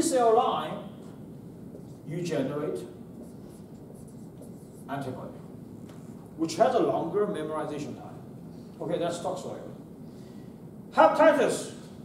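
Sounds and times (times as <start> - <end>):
marker writing on whiteboard: 1.7 - 2.1, 3.1 - 5.1.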